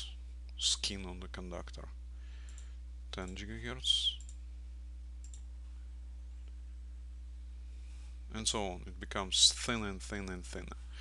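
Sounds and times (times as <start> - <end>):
low electrical hum: 0.0 - 11.0
computer mouse clicks: 5.2 - 5.5.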